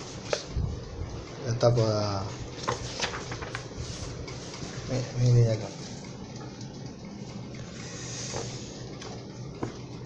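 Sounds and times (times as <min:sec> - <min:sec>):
electric fan hiss: 0:00.0 - 0:10.0
book handling noise: 0:02.5 - 0:05.0
pages swishing: 0:02.6 - 0:04.2.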